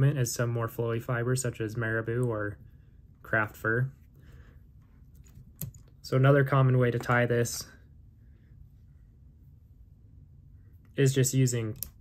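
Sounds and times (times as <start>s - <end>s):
small clicks and handling noise: 4.9s - 6.0s, 11.6s - 12.0s.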